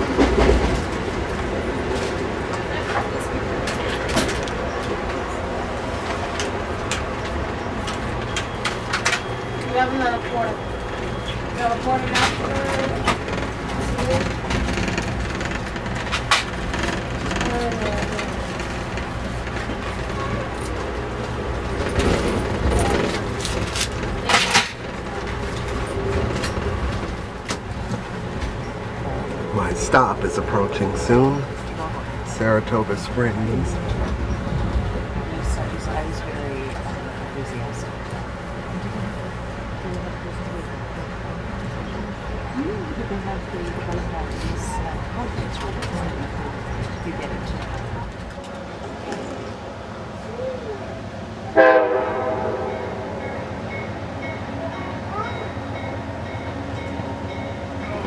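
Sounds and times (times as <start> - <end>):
passenger chatter: 0.0 - 58.0
train car rumble and rattle: 0.0 - 58.0.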